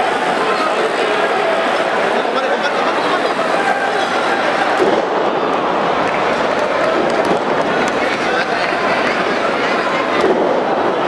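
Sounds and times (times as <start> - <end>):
arena crowd shouting and chattering: 0.0 - 11.0.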